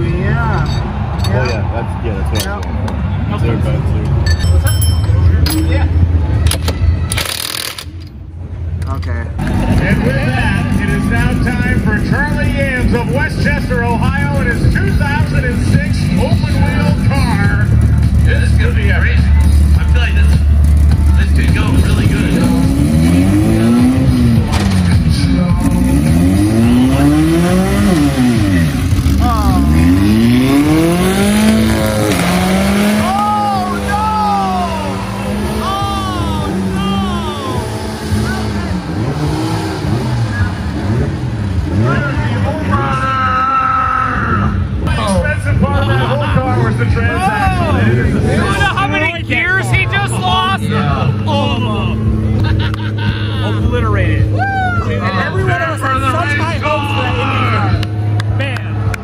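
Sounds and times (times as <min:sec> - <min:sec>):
race car engine revving: 0:09.1 - 0:59.0.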